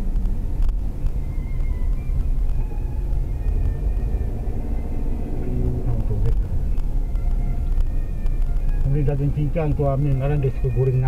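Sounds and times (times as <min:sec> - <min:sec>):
car engine and tyre rumble: 0:00.0 - 0:11.0.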